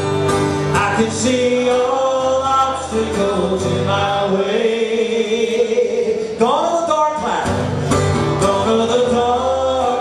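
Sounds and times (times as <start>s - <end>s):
country instrumental backing: 0.0s - 10.0s.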